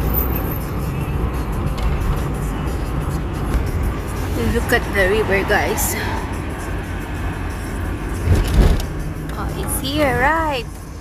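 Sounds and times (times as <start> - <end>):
road and engine rumble in car: 0.0 - 11.0.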